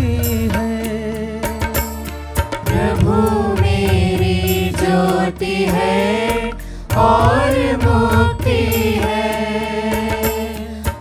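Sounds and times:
church choir singing: 0:02.7 - 0:10.7.

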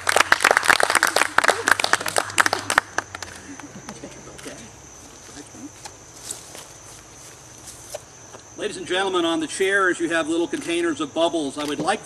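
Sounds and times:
insects droning: 0:00.0 - 0:12.0
faint rustling: 0:04.4 - 0:08.4.

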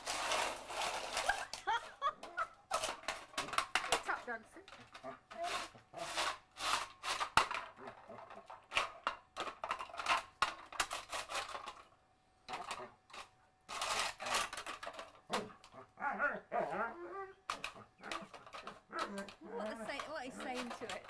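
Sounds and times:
tin can clattering on stone: 0:02.2 - 0:04.3, 0:07.2 - 0:07.7, 0:08.3 - 0:11.8, 0:17.5 - 0:21.0.

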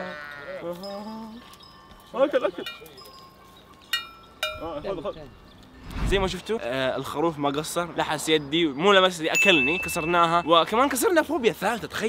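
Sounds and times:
sheep bleating: 0:00.0 - 0:01.1.

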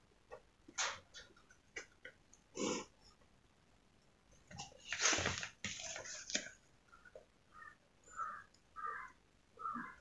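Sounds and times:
paper rustling: 0:04.5 - 0:06.6.

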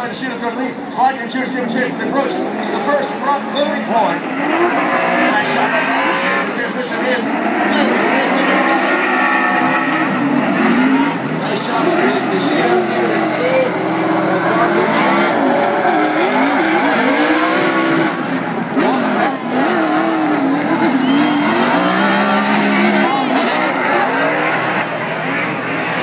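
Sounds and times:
car engines revving: 0:00.0 - 0:26.0.

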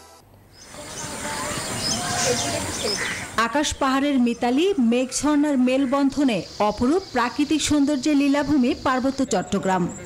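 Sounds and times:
insects chirring: 0:04.2 - 0:10.0.

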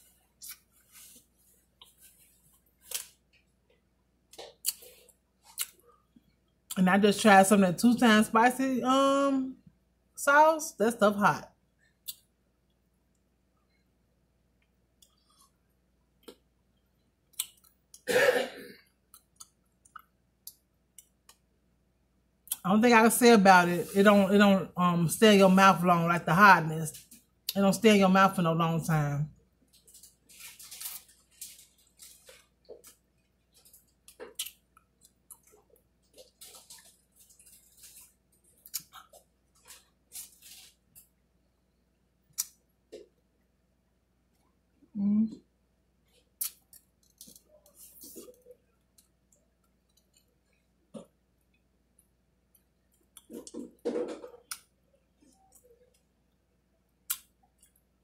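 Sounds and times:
wet mouth clicks and smacks: 0:04.3 - 0:04.9, 0:57.1 - 0:57.8
person coughing: 0:18.1 - 0:18.8.

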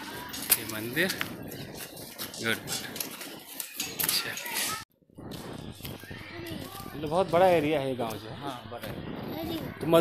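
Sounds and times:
outdoor background noise: 0:00.0 - 0:10.0
faint voices murmuring: 0:05.6 - 0:10.0.

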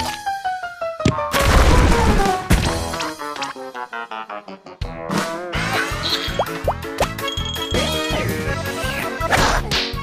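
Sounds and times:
playful cartoon music: 0:00.0 - 0:10.0.

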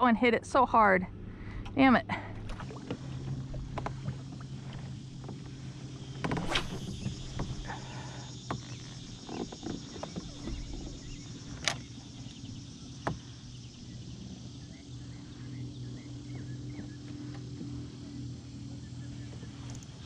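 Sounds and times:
steady low hum: 0:00.0 - 0:20.0
water lapping against a hull: 0:00.8 - 0:20.0.

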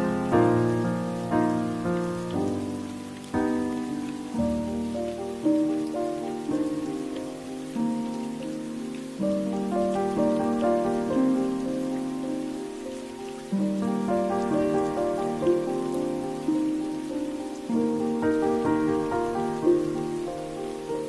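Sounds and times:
rain hiss: 0:00.0 - 0:21.0
slow soft piano music: 0:00.0 - 0:21.0.

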